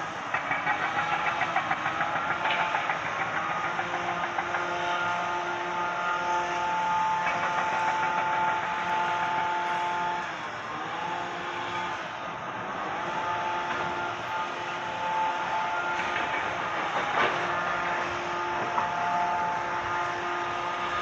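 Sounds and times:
engine running: 0:00.0 - 0:21.0
steady whine of held tones: 0:00.0 - 0:21.0.

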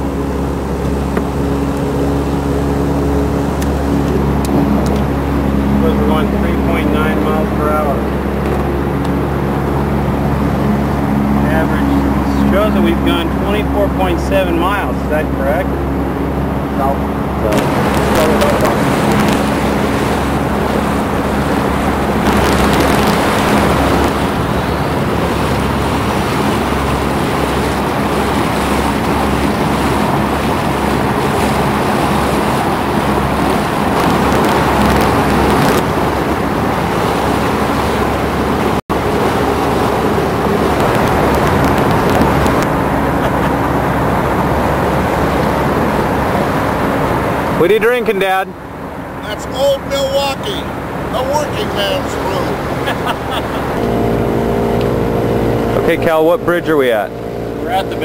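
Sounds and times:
water washing past hull: 0:00.0 - 0:58.0
wind rushing over microphone: 0:00.0 - 0:58.0
low steady hum: 0:50.5 - 0:58.0.

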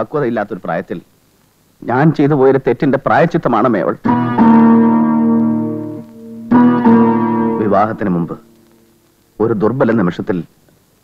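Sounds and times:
keyboard chord struck sharply: 0:04.1 - 0:08.5
held keyboard chord: 0:04.1 - 0:08.6.

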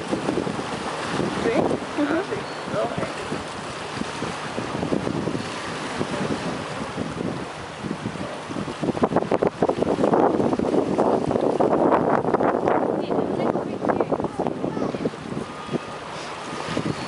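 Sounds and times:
sea water washing against concrete: 0:00.0 - 0:17.0
wind buffeting microphone: 0:00.0 - 0:17.0.

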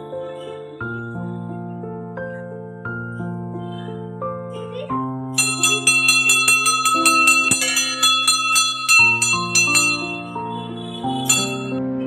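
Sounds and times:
temple bell rung rapidly: 0:05.4 - 0:10.5, 0:11.2 - 0:11.8.

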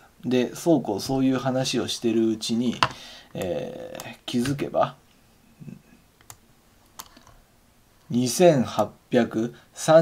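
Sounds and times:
computer clicks: 0:06.2 - 0:06.4.

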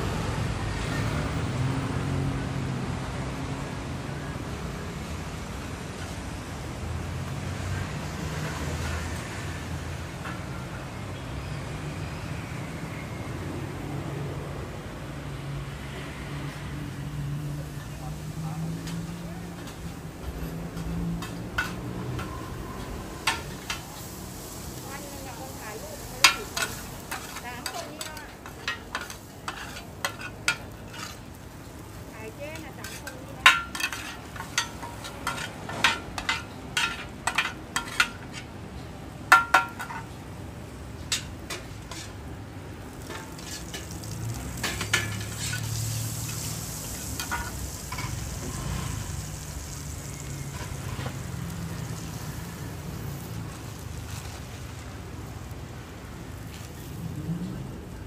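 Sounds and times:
food sizzling in oil: 0:16.6 - 0:38.5, 0:40.6 - 0:58.0
metal spatulas clanking on pan: 0:19.6 - 0:24.1, 0:26.2 - 0:31.3, 0:32.5 - 0:38.5, 0:39.3 - 0:40.2, 0:41.1 - 0:42.2, 0:43.0 - 0:46.5, 0:47.1 - 0:48.3.

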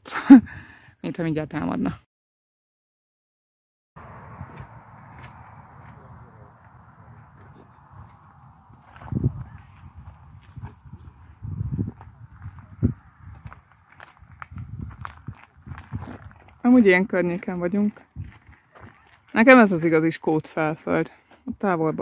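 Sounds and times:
footsteps on gravel: 0:04.0 - 0:21.4.

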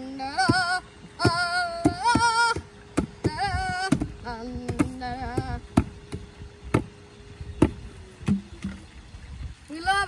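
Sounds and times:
faint steady hum: 0:00.0 - 0:10.0
hollow knocks of plastic jugs: 0:00.4 - 0:07.0, 0:07.6 - 0:08.9.

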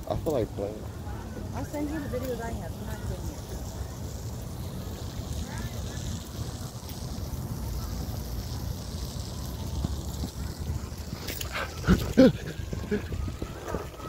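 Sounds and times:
faint voices: 0:00.0 - 0:14.0.

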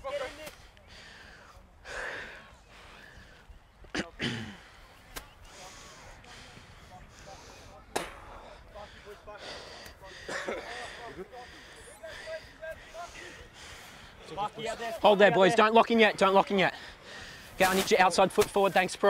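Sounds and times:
distant voices of players calling: 0:00.0 - 0:19.0.

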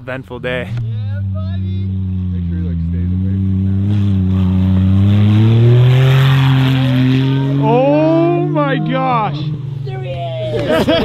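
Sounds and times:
voices: 0:00.0 - 0:11.0
small engine revving hard: 0:00.8 - 0:09.8.

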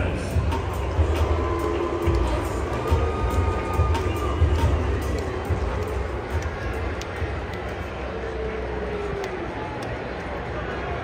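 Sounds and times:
music over loudspeakers: 0:00.0 - 0:08.4
crowd ambience: 0:00.0 - 0:11.0.

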